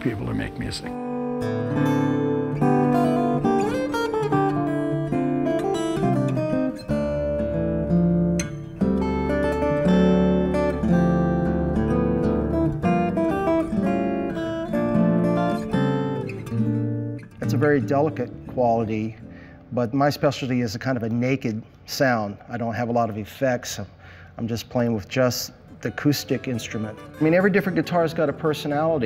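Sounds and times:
acoustic guitar playing: 0:00.0 - 0:19.8, 0:25.6 - 0:29.0.

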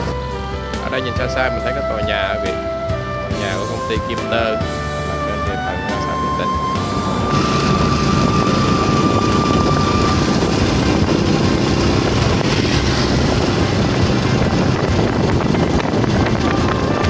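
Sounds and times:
wind and road noise: 0:00.0 - 0:17.0
motorbike engine running: 0:06.0 - 0:17.0.

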